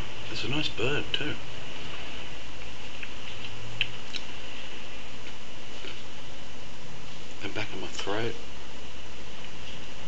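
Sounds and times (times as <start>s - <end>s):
background hiss: 0.0s - 10.0s
low hum: 0.0s - 10.0s.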